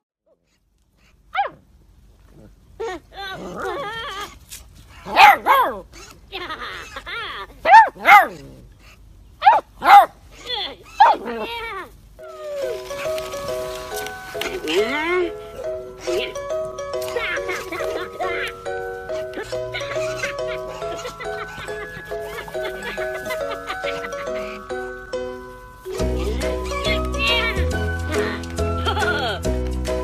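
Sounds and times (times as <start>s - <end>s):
puppy yapping: 3.4s - 6.2s, 7.6s - 8.6s, 9.4s - 11.8s, 15.6s - 24.6s
music with held notes: 12.2s - 30.0s.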